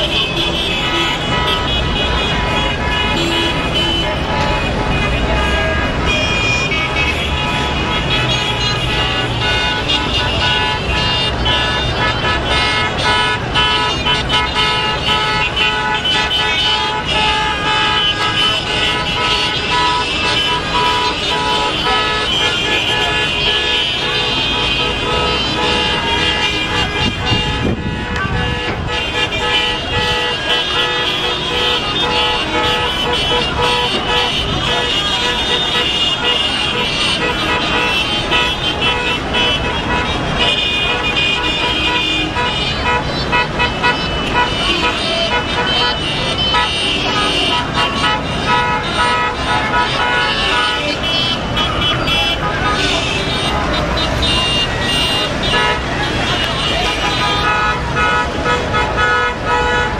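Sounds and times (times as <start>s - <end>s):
car horns honking: 0.0s - 59.9s
crowd voices: 0.0s - 59.9s
street traffic: 0.0s - 59.9s.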